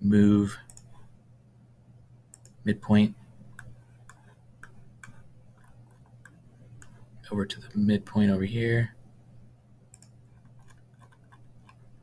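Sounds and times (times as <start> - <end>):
faint low hum: 0.0 - 12.0
computer mouse clicking: 0.6 - 1.1, 2.3 - 2.6, 3.5 - 7.0, 9.9 - 12.0.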